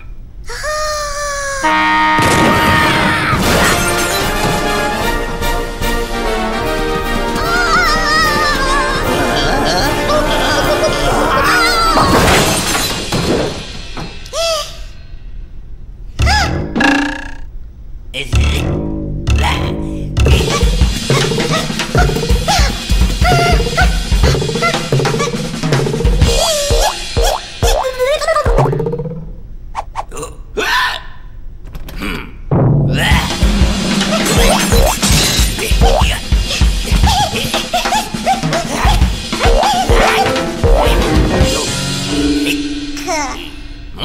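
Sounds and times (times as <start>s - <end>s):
cartoon music: 7.2s - 12.2s, 18.3s - 29.1s, 33.1s - 43.6s
cartoon clicks: 16.2s - 17.5s.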